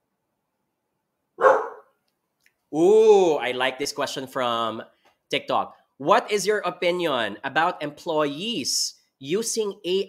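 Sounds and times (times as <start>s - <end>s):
dog barking: 1.4s - 1.9s.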